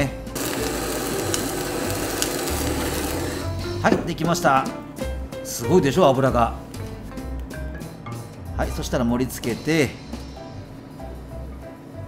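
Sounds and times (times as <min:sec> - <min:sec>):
gas torch hissing: 0:00.3 - 0:03.6.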